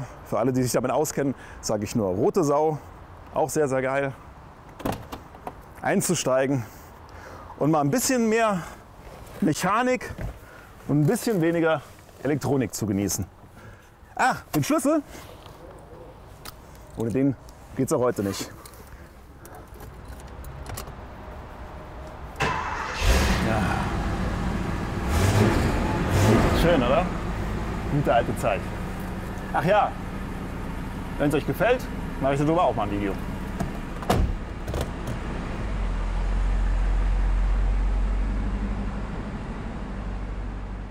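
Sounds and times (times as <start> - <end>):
car engine rumbling: 18.5 - 40.9
car key jingling and clicking: 19.5 - 20.9
car door shutting: 33.1 - 35.3.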